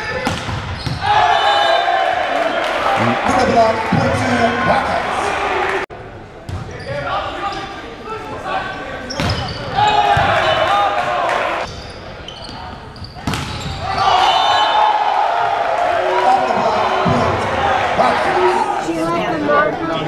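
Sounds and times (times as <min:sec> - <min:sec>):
voices echoing in a gymnasium: 0:00.0 - 0:20.0
volleyball hits: 0:09.2 - 0:10.8.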